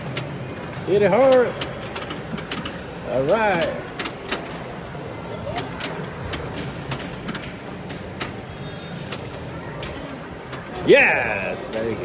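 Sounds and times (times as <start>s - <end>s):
arcade hall din: 0.0s - 12.0s
pinball flippers and ball clicking: 0.0s - 12.0s.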